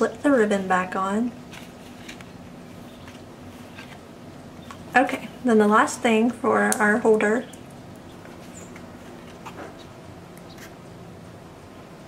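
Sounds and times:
steady low hiss: 0.0s - 12.0s
soft paper rustles and ticks: 1.5s - 4.0s.

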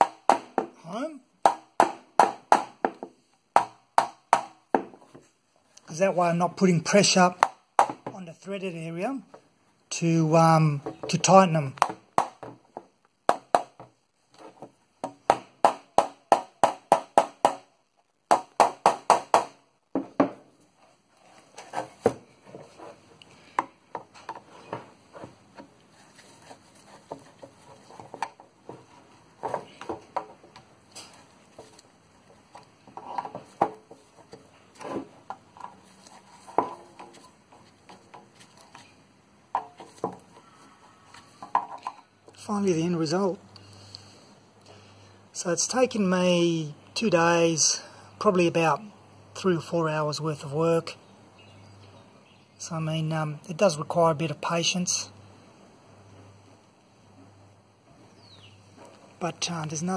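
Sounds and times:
small hammer tapping a drift: 0.0s - 0.8s, 1.4s - 5.0s, 11.8s - 14.0s, 15.0s - 17.7s.

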